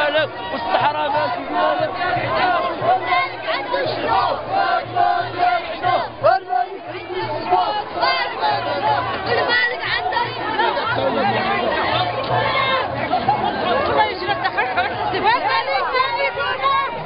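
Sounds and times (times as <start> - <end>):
crowd talking and calling out: 0.0 - 17.0.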